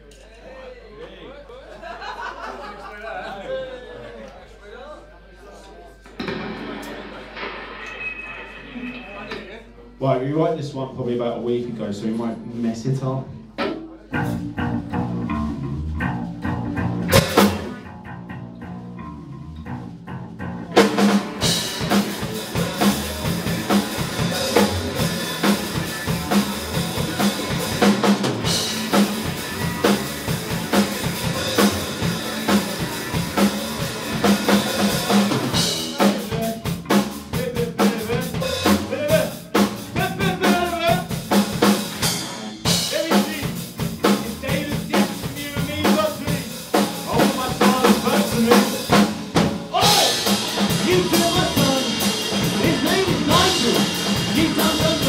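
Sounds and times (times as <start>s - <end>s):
live band playing: 6.1s - 10.5s, 11.8s - 55.0s
drum hit: 6.2s - 9.9s, 17.1s - 17.8s.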